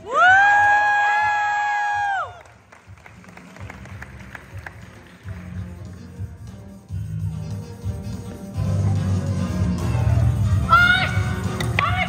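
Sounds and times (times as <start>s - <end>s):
background music with steady beat: 0.0s - 12.0s
person yelling high-pitched: 10.6s - 12.0s.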